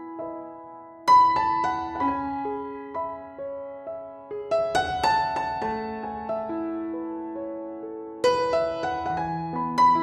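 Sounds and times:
piano music: 0:00.0 - 0:10.0.

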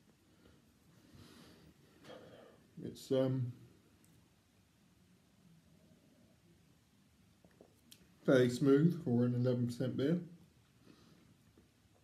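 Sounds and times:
faint breath: 0:00.2 - 0:02.7, 0:10.8 - 0:11.5.

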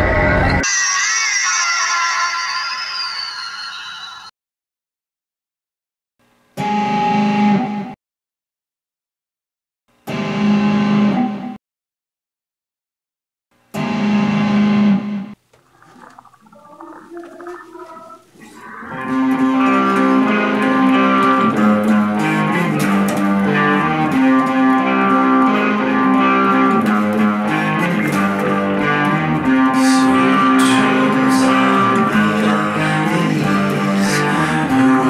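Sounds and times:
electric guitar music: 0:18.7 - 0:35.0.

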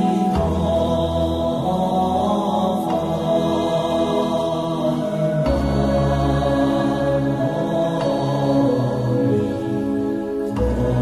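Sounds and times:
low sustained drone: 0:00.0 - 0:11.0
slow chanting: 0:00.0 - 0:11.0.

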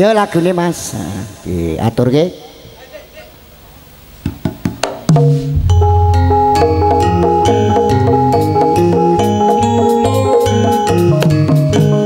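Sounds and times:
quick drum strokes: 0:05.1 - 0:08.3
band music: 0:05.2 - 0:12.0.

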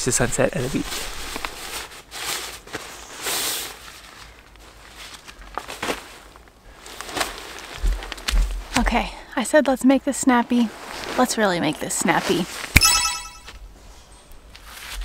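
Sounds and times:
tent fabric rustling: 0:00.0 - 0:08.8, 0:10.3 - 0:12.7.

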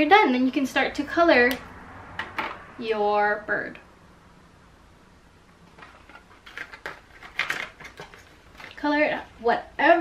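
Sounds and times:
crayons rattling in a box: 0:05.8 - 0:08.9.

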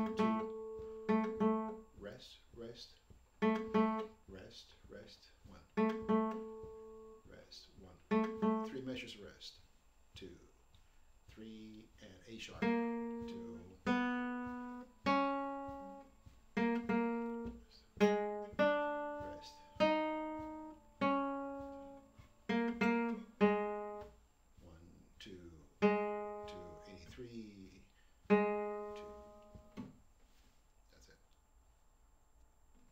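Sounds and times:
classical guitar plucked chords: 0:00.0 - 0:02.0, 0:03.4 - 0:04.2, 0:05.6 - 0:07.3, 0:08.0 - 0:09.1, 0:12.4 - 0:24.2, 0:25.7 - 0:27.6, 0:28.3 - 0:30.0
quiet voice: 0:07.2 - 0:08.0, 0:13.2 - 0:13.8, 0:26.5 - 0:27.9, 0:30.9 - 0:31.4.

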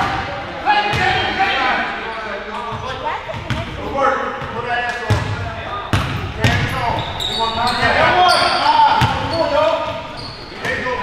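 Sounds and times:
players calling out: 0:00.0 - 0:11.0.

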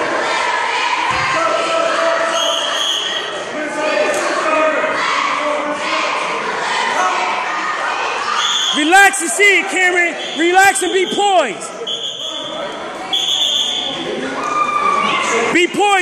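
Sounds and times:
crowd chattering and calling out: 0:00.0 - 0:16.0.

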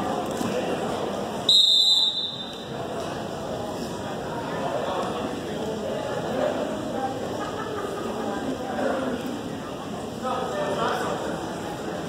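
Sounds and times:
crowd murmur: 0:00.0 - 0:12.0
referee's whistle blast: 0:01.5 - 0:02.6.

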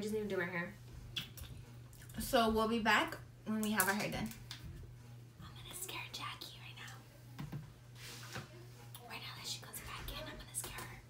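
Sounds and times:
low steady hum: 0:00.0 - 0:11.0
faint whispering: 0:08.9 - 0:11.0.

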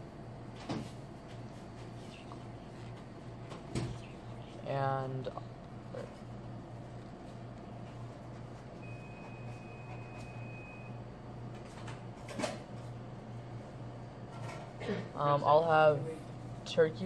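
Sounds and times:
room tone hum: 0:00.0 - 0:17.0.

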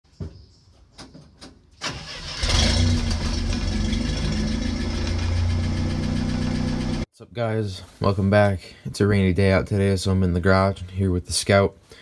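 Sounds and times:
engine starting and idling: 0:01.8 - 0:07.0.

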